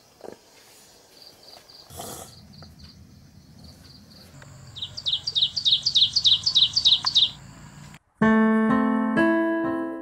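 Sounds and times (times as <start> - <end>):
songbird chirping: 0.0 - 8.0.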